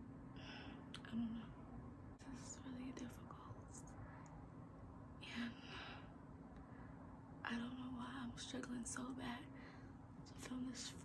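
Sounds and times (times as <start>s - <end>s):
faint steady hum: 0.0s - 11.0s
woman whispering: 1.0s - 1.6s, 2.2s - 4.1s, 5.2s - 5.7s, 7.4s - 9.5s, 10.3s - 11.0s.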